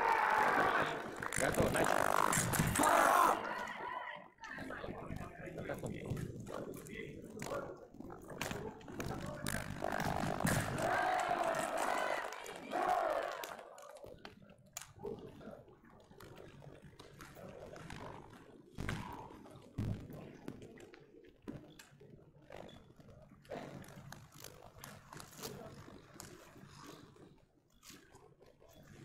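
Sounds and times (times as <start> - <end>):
voices echoing in a hall: 0.0 - 14.4.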